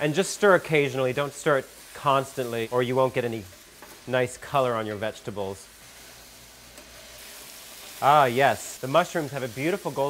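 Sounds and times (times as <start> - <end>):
mushrooms and onions sizzling in fat: 0.0 - 10.0.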